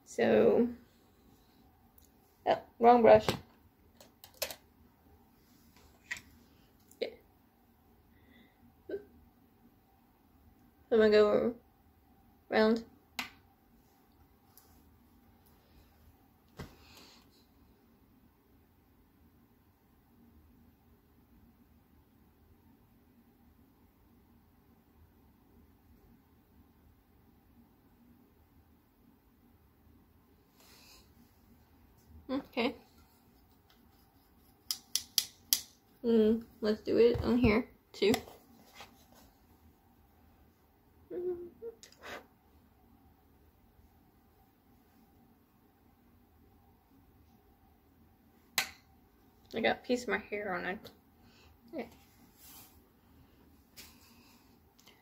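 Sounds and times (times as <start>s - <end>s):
makeup tools clicking: 34.7s - 35.8s
woman murmuring: 41.1s - 41.9s.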